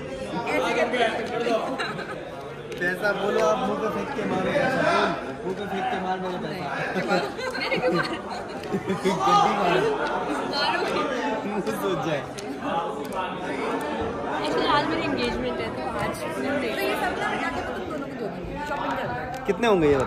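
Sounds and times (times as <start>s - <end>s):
people talking over one another: 0.0s - 20.0s.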